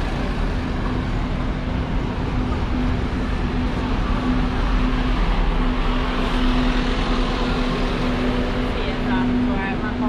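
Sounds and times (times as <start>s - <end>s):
bus driving past: 0.0s - 10.0s
street traffic: 0.0s - 10.0s.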